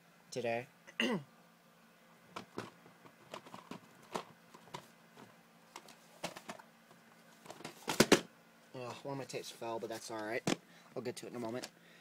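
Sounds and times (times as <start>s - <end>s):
plastic tape cases knocking: 2.3s - 4.9s, 7.5s - 8.3s
tape falling with loud knock: 7.5s - 8.3s.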